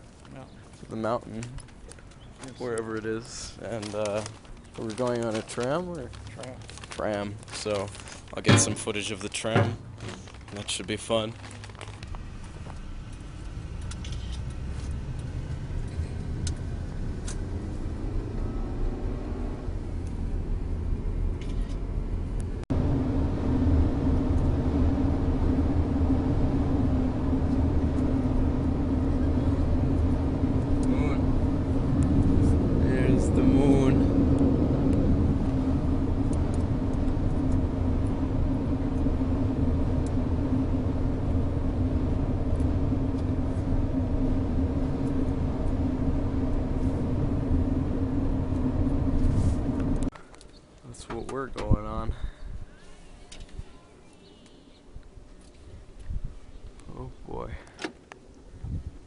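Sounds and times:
car engine and tyre rumble: 0.0s - 52.0s
constant hum: 0.0s - 59.0s.

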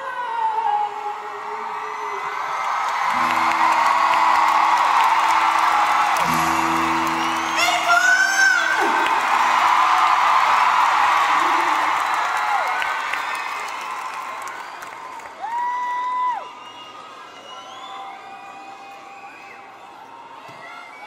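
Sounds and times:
crowd cheering and screaming: 0.0s - 21.0s.

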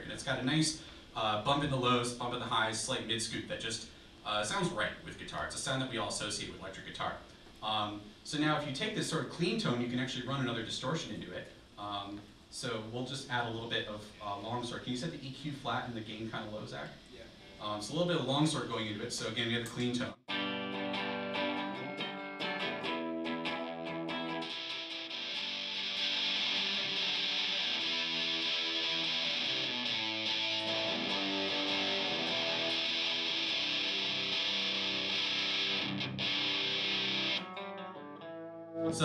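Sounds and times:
distorted electric guitar: 20.3s - 39.0s.

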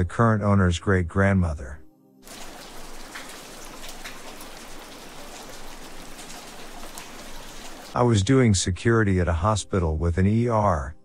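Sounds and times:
steady rain falling: 2.2s - 8.0s.

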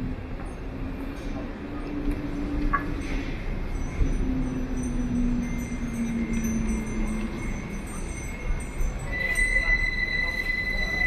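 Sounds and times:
faint high ringing tones: 0.0s - 11.0s.

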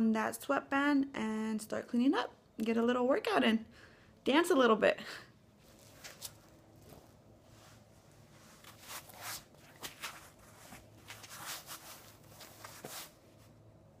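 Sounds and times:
rustling and handling noises: 5.5s - 13.8s.

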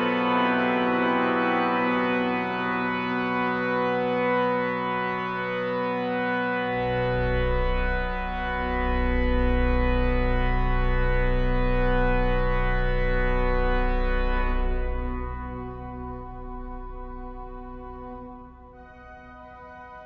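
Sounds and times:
pipe organ chords: 0.0s - 20.0s
deep organ pedal note: 6.9s - 19.3s.

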